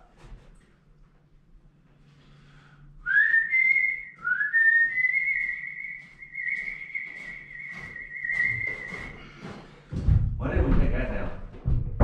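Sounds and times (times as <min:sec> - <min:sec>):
person whistling: 0:03.0 - 0:09.3.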